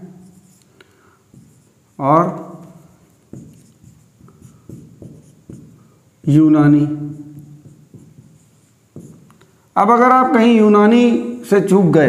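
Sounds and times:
marker writing on whiteboard: 0:00.0 - 0:09.8.

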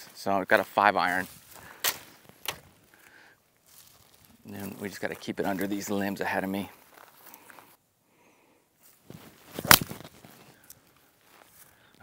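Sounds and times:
soft rustling: 0:01.0 - 0:06.0, 0:08.8 - 0:11.8.

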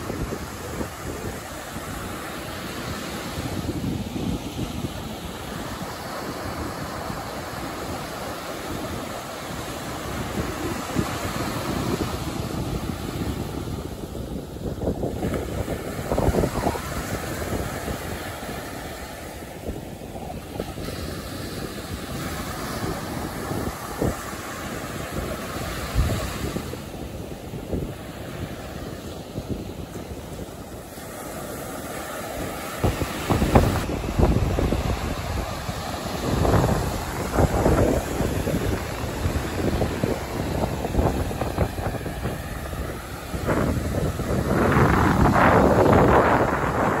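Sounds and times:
waves washing up beach: 0:00.0 - 0:47.0
wind buffeting microphone: 0:00.0 - 0:47.0.

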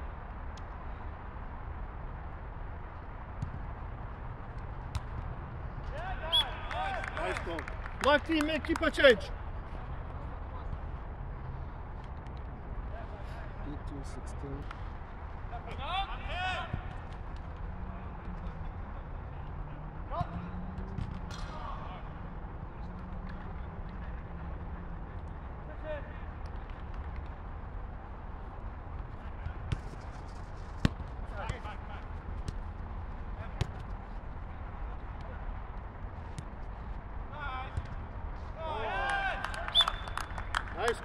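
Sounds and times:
players shouting: 0:38.6 - 0:40.1.

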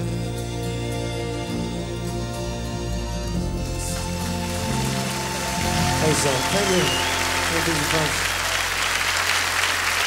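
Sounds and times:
audience applause: 0:03.9 - 0:10.0.

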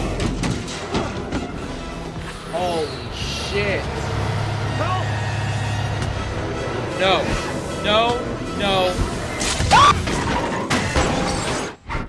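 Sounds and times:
truck engine rumble: 0:02.9 - 0:08.6.

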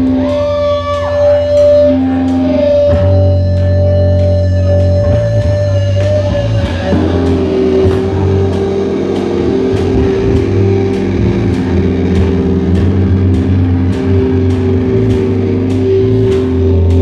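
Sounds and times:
cymbal struck: 0:00.0 - 0:17.0
heavy rock band playing: 0:00.0 - 0:17.0.

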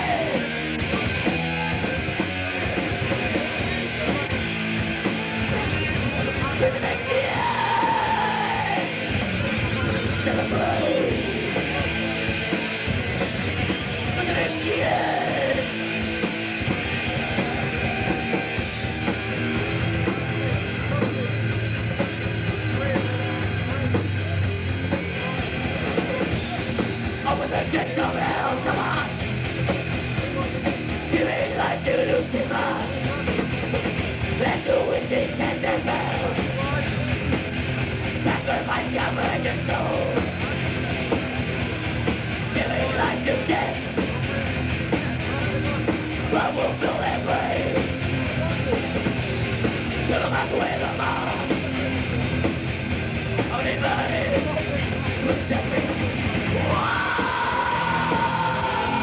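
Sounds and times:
distorted electric guitars: 0:00.0 - 0:59.0
fast drumming: 0:00.0 - 0:59.0.

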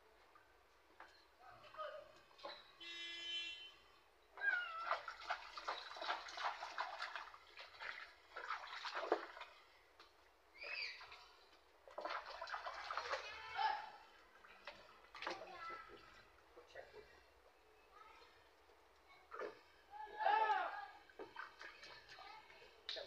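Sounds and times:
water splashing in plastic tub: 0:04.4 - 0:16.5, 0:19.3 - 0:23.0.

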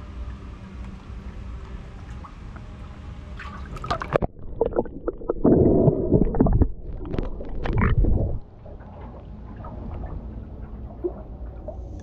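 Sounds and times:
water sloshing and gurgling: 0:00.2 - 0:12.0
water bubbling: 0:03.6 - 0:10.1.

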